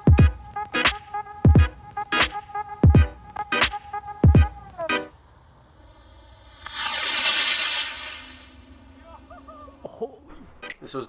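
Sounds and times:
electronic music: 0:00.0 - 0:05.2
rocket firing hissing rush: 0:05.5 - 0:09.3.

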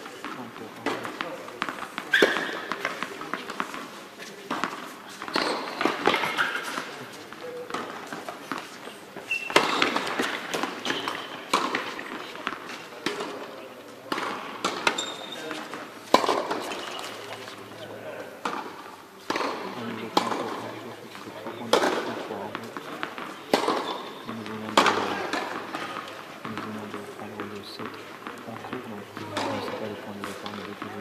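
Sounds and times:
people's voices: 0:00.0 - 0:31.0
sharp knocks with echo: 0:19.3 - 0:20.6, 0:21.4 - 0:31.0.

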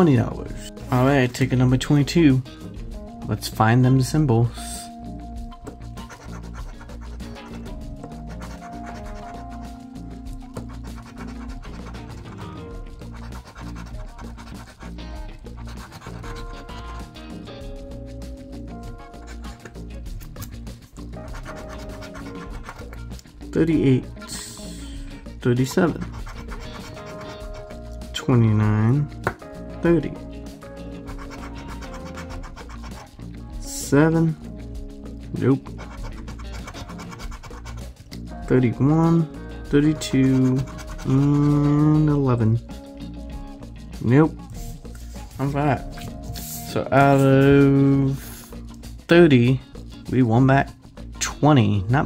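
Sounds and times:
background music: 0:00.0 - 0:52.0
coin scratching a lottery ticket: 0:06.0 - 0:09.8, 0:10.5 - 0:17.1, 0:19.0 - 0:19.7, 0:21.2 - 0:23.0, 0:25.9 - 0:27.8, 0:31.0 - 0:33.1, 0:35.7 - 0:37.9, 0:39.9 - 0:41.7.

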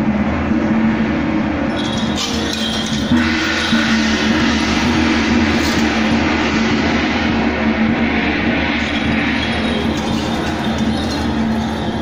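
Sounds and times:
steady low hum: 0:00.0 - 0:12.0
street procession din: 0:01.6 - 0:07.4, 0:08.0 - 0:12.0.

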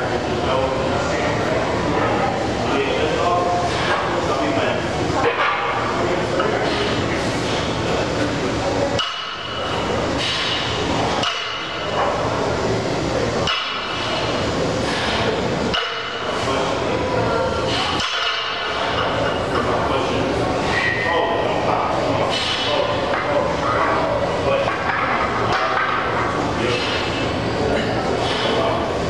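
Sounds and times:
loud background din: 0:00.0 - 0:29.0.

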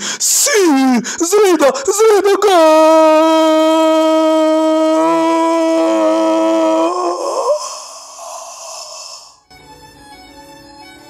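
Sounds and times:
man shouting long steady note: 0:00.8 - 0:07.6.

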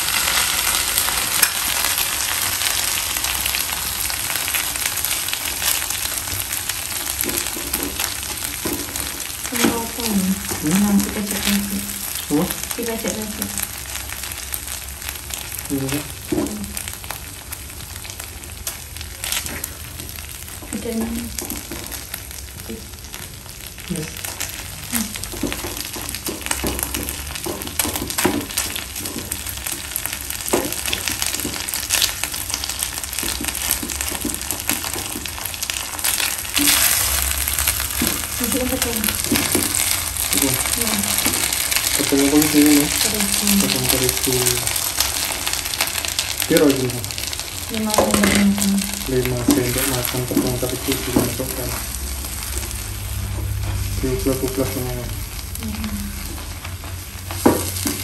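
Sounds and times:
meat and onions sizzling: 0:00.0 - 0:58.0.

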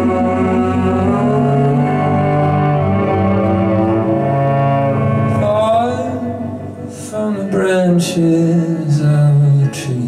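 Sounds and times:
electric guitar: 0:00.0 - 0:07.6.

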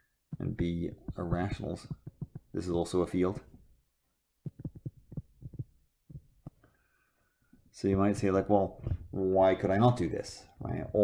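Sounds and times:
stylus knocking on tablet screen: 0:00.3 - 0:02.7, 0:04.4 - 0:06.6.

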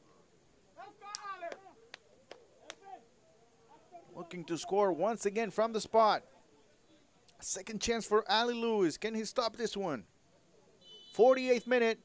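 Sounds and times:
footballers shouting: 0:00.7 - 0:06.2
short sharp snaps: 0:01.1 - 0:02.9.

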